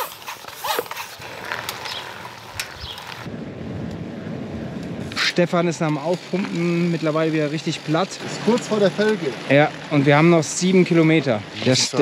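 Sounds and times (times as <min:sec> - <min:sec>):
bicycle rolling on road: 0:00.0 - 0:12.0.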